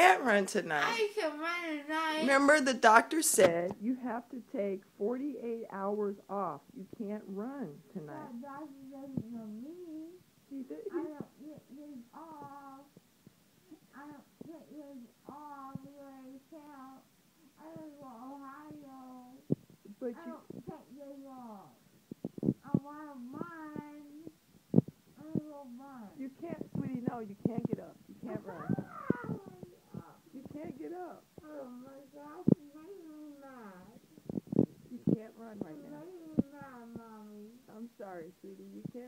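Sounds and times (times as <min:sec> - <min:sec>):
woman making sing-song sounds: 0:10.8 - 0:12.1
woman whining and moaning: 0:28.3 - 0:29.5.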